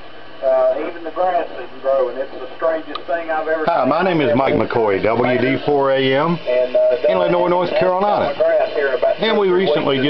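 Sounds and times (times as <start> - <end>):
person talking over radio speaker: 0.4 - 10.0.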